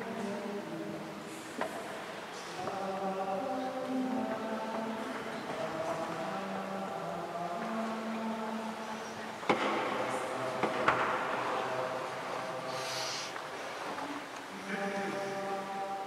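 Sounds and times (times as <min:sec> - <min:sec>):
mixed choir singing: 0:00.0 - 0:13.4, 0:14.5 - 0:16.0.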